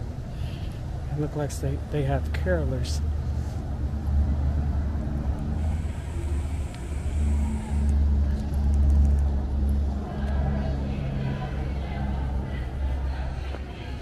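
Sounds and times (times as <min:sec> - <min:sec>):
loud low rumble: 0:00.9 - 0:14.0.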